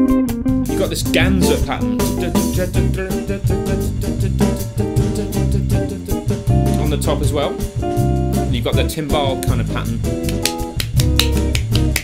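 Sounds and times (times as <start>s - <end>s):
bass guitar: 0.0s - 12.0s
drum kit: 0.0s - 12.0s
shaker pattern: 10.2s - 12.0s.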